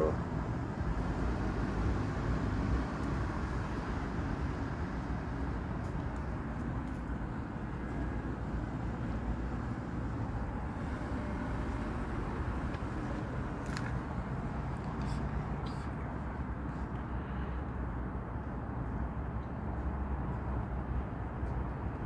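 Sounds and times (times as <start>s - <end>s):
low rumble of road traffic: 0.0s - 22.0s.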